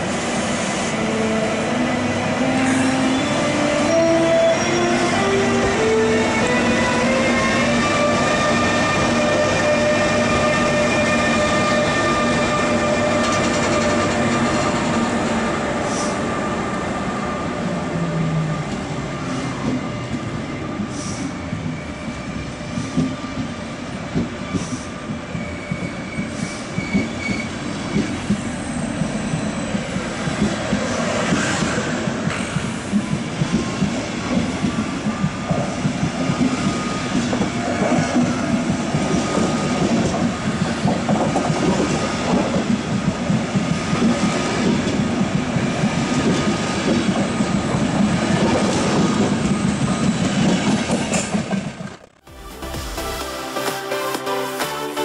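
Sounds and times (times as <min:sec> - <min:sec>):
electric locomotive whine: 0:00.0 - 0:52.0
train coaches rumbling: 0:00.0 - 0:53.4.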